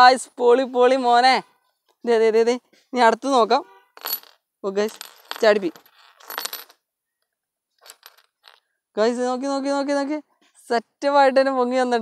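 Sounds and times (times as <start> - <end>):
metal pieces clinking on wood: 4.0 - 6.8, 7.8 - 8.7.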